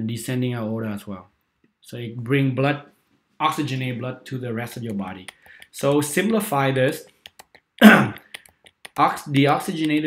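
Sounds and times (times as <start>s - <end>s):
man clearing his throat: 7.8s - 8.2s.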